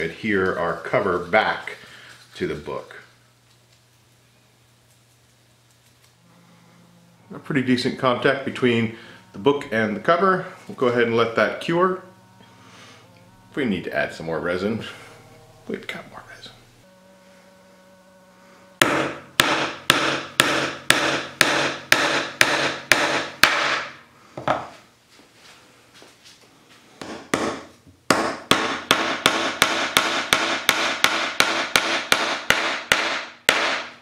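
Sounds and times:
hammer striking nails into wood: 0:18.8 - 0:24.0, 0:27.0 - 0:34.0.

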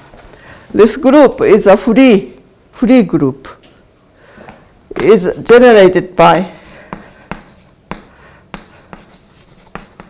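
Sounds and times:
chalk scraping on chalkboard: 0:06.4 - 0:10.0
chalk tapping on chalkboard: 0:06.6 - 0:10.0.

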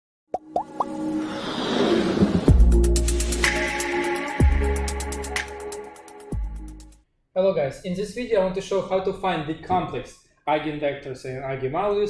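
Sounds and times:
whoosh: 0:01.0 - 0:02.9.

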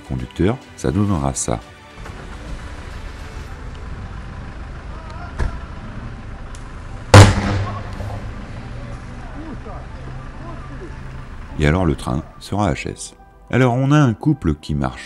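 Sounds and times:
sharp crack: 0:06.5 - 0:08.2
electrical flashover bang: 0:07.2 - 0:08.2.

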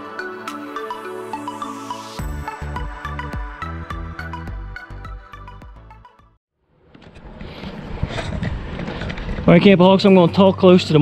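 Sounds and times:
wind on microphone: 0:07.1 - 0:09.5.

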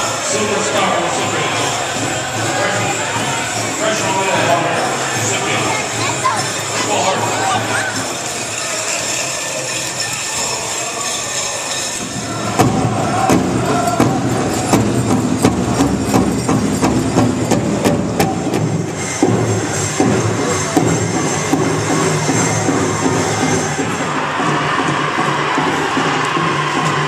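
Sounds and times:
crowd murmur: 0:00.0 - 0:27.0
large drum steady beat: 0:12.1 - 0:27.0.

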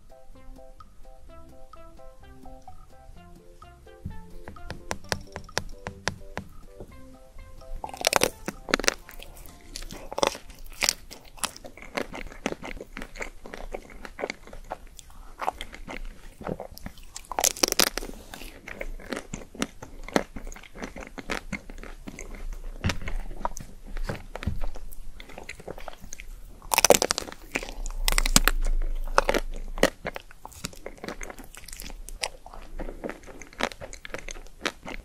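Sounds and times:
chewing: 0:07.7 - 0:35.0
chocolate coating crackling when bitten: 0:07.8 - 0:35.0.

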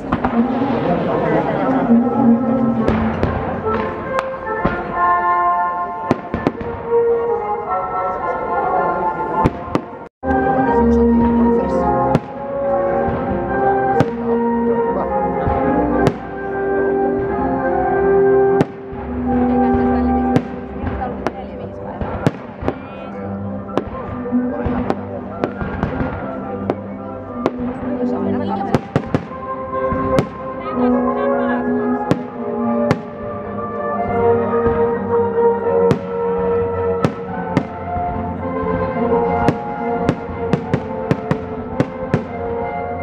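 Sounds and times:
fireworks bangs: 0:00.0 - 0:02.0, 0:02.7 - 0:05.2, 0:06.0 - 0:07.0, 0:12.0 - 0:14.4, 0:15.4 - 0:16.6, 0:18.5 - 0:30.6, 0:32.1 - 0:33.5, 0:35.8 - 0:42.9
music with long held notes: 0:00.0 - 0:43.0.

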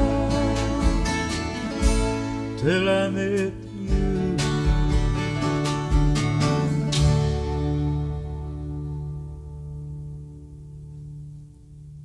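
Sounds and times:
person singing: 0:00.0 - 0:07.5
country band playing live: 0:00.0 - 0:08.9.

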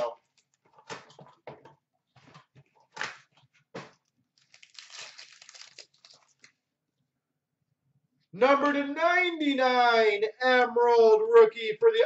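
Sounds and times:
foil wrapper crinkling: 0:04.0 - 0:06.6.

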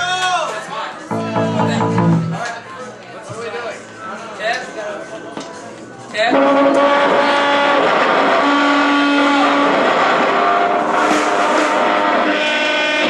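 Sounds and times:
electric guitar long held notes: 0:01.1 - 0:02.4
live rock band music: 0:01.1 - 0:02.6.

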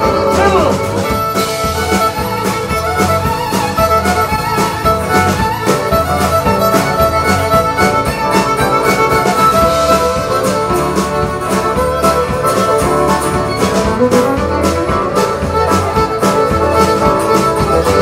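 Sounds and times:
fiddle lead line: 0:00.0 - 0:18.0
live country band playing: 0:00.0 - 0:18.0.

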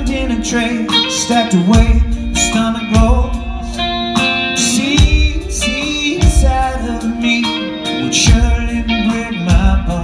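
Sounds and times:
bass guitar: 0:00.0 - 0:10.0
distorted electric guitars: 0:00.0 - 0:10.0
person singing: 0:00.0 - 0:10.0.

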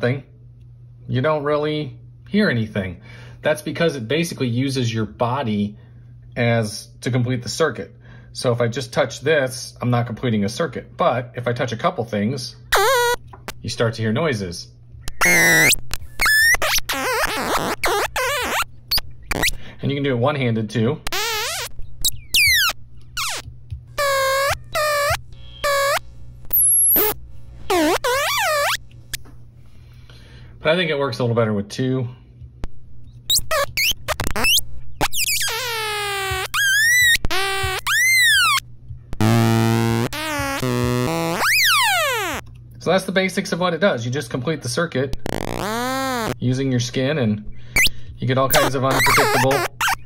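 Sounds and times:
squealing electronic tones: 0:12.7 - 0:13.2, 0:15.0 - 0:19.6, 0:21.1 - 0:23.4, 0:24.0 - 0:28.8, 0:33.3 - 0:38.6, 0:39.2 - 0:42.4, 0:45.2 - 0:46.4, 0:47.8 - 0:50.0.

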